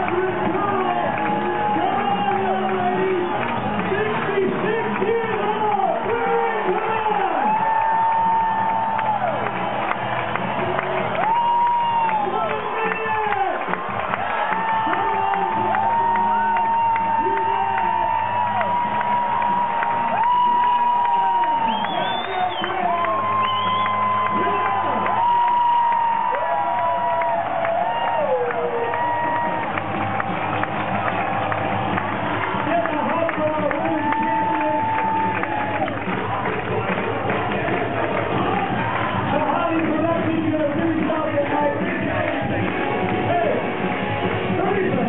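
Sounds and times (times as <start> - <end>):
crowd cheering and whooping: 0.0 - 45.0
loud music: 0.0 - 45.0.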